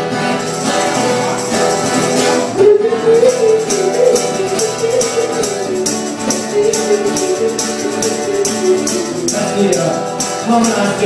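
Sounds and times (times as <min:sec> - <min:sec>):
acoustic guitar strumming: 0:00.0 - 0:11.0
person singing: 0:00.0 - 0:11.0
tambourine jingling: 0:00.0 - 0:11.0.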